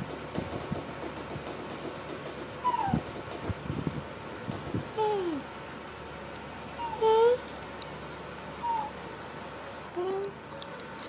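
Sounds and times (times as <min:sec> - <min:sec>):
small animal high-pitched call: 0:02.6 - 0:03.0, 0:06.8 - 0:07.4, 0:08.6 - 0:09.0.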